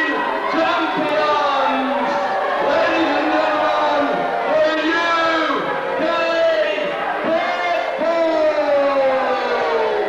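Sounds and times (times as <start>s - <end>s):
man calling through loudspeakers: 0.0s - 10.0s.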